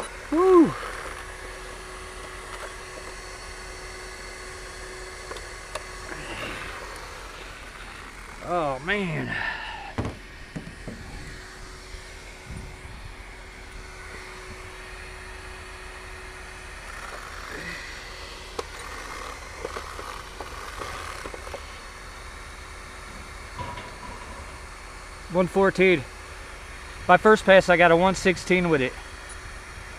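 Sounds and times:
faint steady whine: 0.0s - 29.9s.

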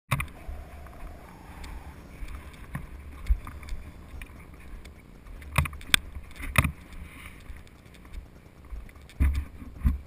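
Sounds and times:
low wind rumble on microphone: 0.1s - 10.0s.

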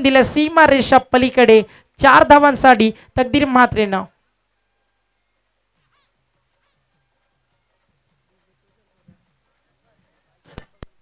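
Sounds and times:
faint short calls: 4.6s - 10.9s.

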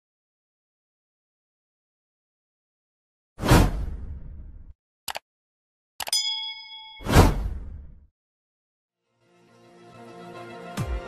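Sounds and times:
bell-like ding: 6.1s - 7.2s.

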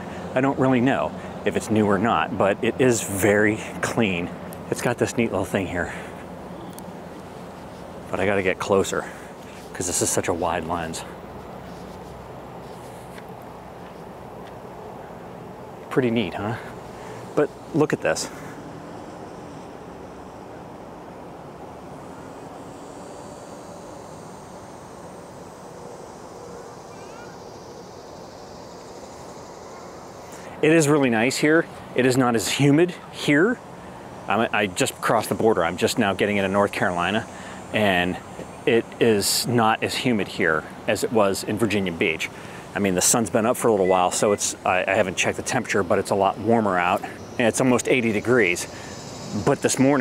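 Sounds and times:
distant traffic rumble: 0.0s - 50.0s.

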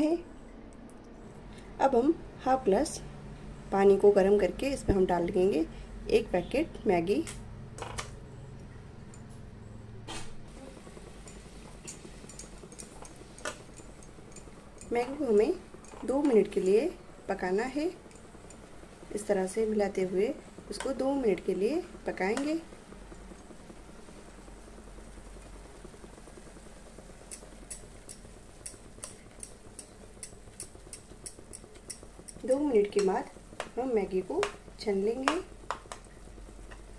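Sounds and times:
low steady hum: 0.0s - 36.9s
noodles softening in hot water: 10.5s - 36.9s
spatula ticking against pan: 27.3s - 36.9s.

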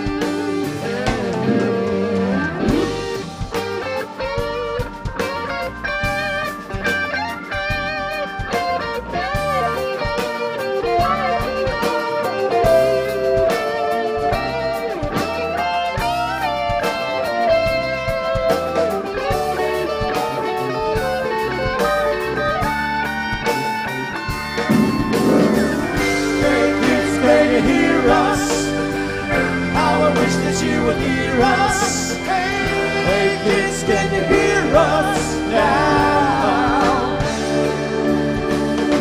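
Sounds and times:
bass and drums: 0.0s - 39.0s
electric guitar with bent notes: 0.0s - 39.0s.

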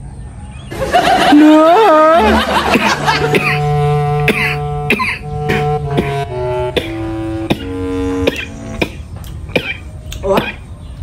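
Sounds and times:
woman coughing: 2.8s - 3.7s, 4.3s - 6.2s, 9.6s - 10.6s.

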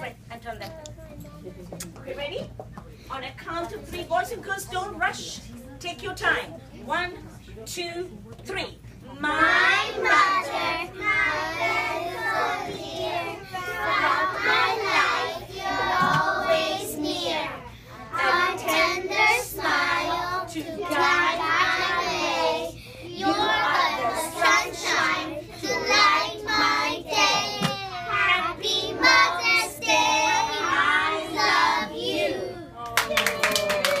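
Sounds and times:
children singing: 9.4s - 32.6s
people clapping: 32.8s - 34.0s.

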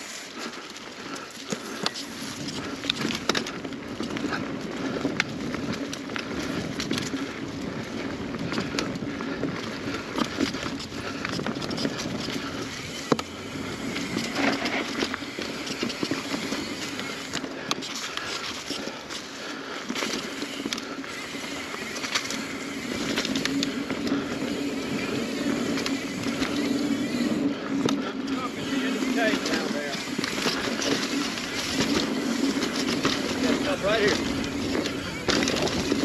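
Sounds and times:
bike frame and chain rattling: 0.0s - 36.0s
bike tyres rolling over dirt: 0.0s - 36.0s.

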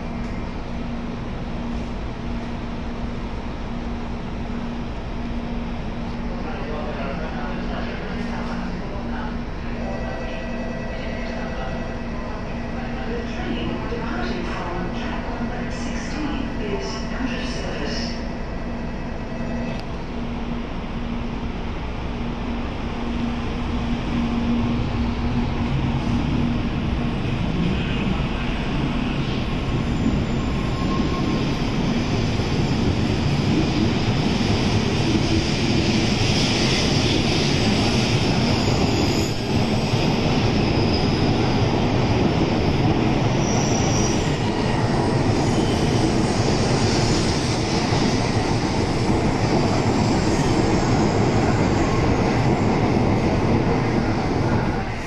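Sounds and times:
train running past: 0.0s - 55.0s.

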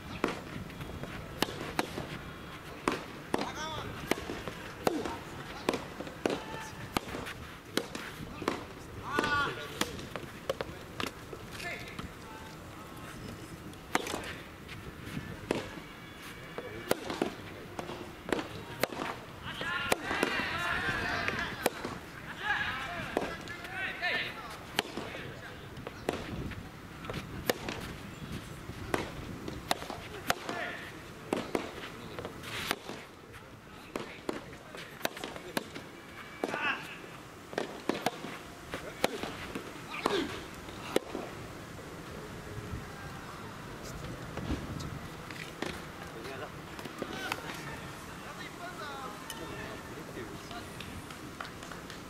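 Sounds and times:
voices shouting: 19.4s - 25.2s
tennis ball pops: 28.9s - 30.6s, 37.5s - 41.3s.

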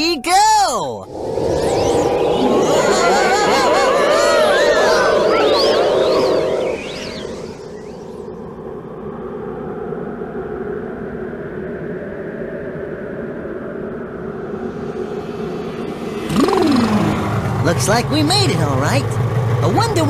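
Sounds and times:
droning rumble: 1.1s - 20.0s.

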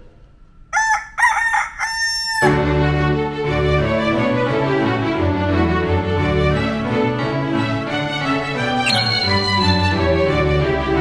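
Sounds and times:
rooster crowing: 0.7s - 2.6s, 8.9s - 10.0s.

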